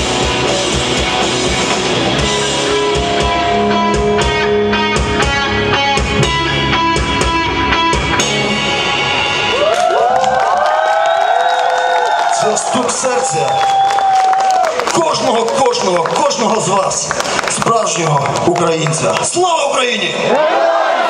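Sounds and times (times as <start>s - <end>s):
electric guitar notes bending: 0.0s - 9.7s
live rock band playing: 0.0s - 9.8s.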